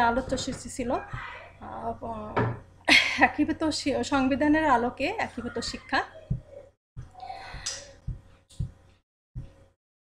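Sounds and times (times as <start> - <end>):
soft low thumps: 6.3 - 8.8.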